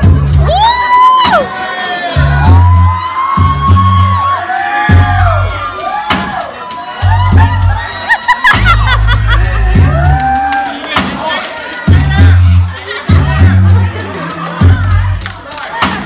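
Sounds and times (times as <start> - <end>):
dance music with heavy bass: 0.0 - 16.0.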